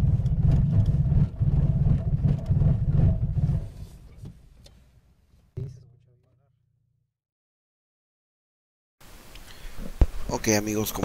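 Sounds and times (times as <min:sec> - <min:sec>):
brief thump: 0:05.6 - 0:06.4.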